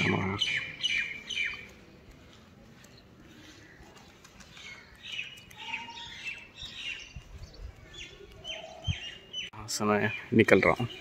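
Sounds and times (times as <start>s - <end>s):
bird calling: 0.0s - 1.8s, 2.9s - 11.0s.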